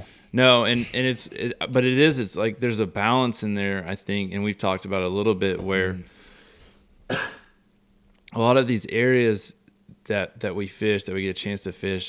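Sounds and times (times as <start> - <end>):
faint room hiss: 0.0 - 12.0
man coughing: 0.6 - 1.1, 7.1 - 7.6.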